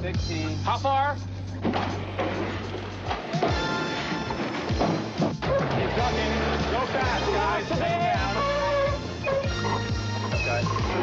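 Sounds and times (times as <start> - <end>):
background music with low bass: 0.0 - 11.0
crew calling out: 6.2 - 11.0.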